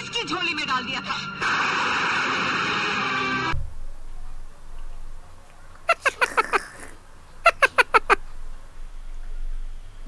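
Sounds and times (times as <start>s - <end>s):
high-pitched squeaky giggle: 5.9s - 8.2s.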